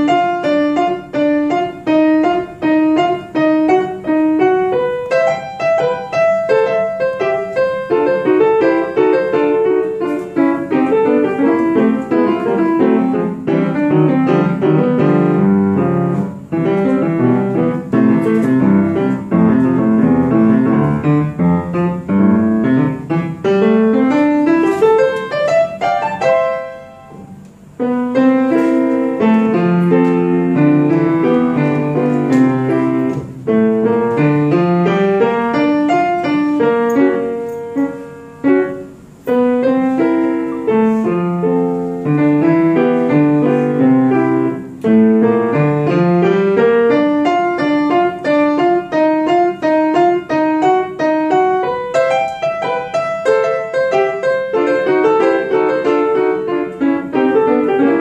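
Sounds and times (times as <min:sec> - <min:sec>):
solo piano playing: 0:00.0 - 0:58.0.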